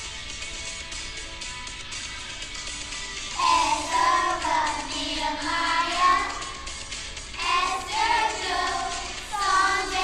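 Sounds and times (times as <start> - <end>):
musical accompaniment: 0.0 - 10.0
children singing together: 3.4 - 6.7, 7.4 - 10.0.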